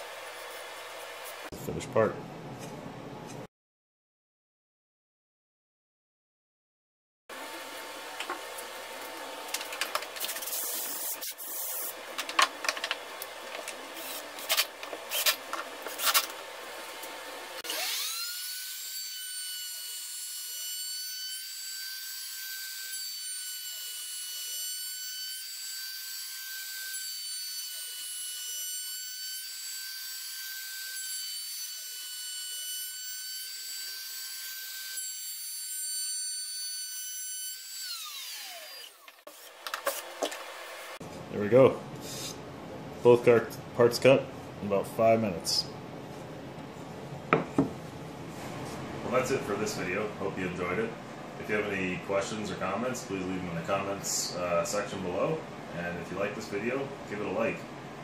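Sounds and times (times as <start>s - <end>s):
router spindle high whine: 17.6s - 18.5s.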